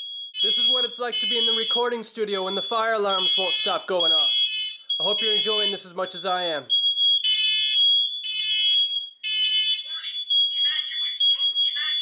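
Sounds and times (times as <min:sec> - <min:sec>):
high-pitched alarm tone: 0:00.0 - 0:12.0
pulsing alarm horn: 0:00.4 - 0:05.9.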